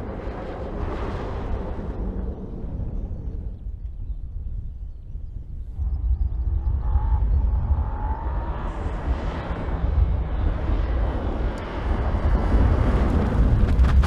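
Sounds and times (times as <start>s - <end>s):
car engine and tyre noise: 0.0s - 14.0s
low rumble: 0.0s - 14.0s.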